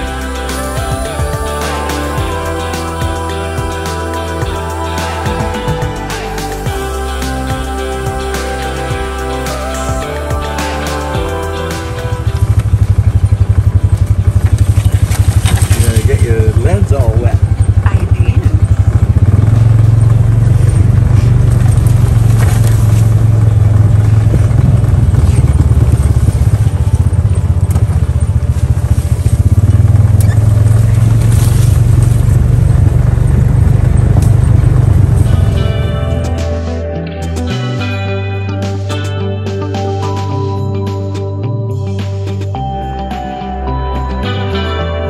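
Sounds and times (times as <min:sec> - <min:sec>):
off-road vehicle engine droning: 0:00.0 - 0:45.0.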